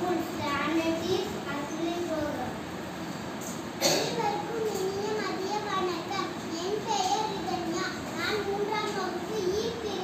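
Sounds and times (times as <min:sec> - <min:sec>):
girl reciting aloud: 0:00.0 - 0:02.6, 0:03.8 - 0:10.0.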